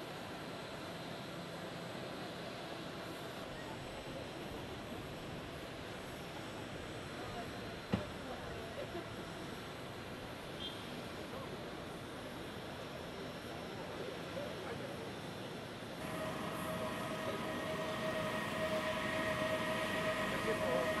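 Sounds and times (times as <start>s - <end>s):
faint voices: 16.0s - 21.0s
mechanical whine of held tones: 16.0s - 21.0s.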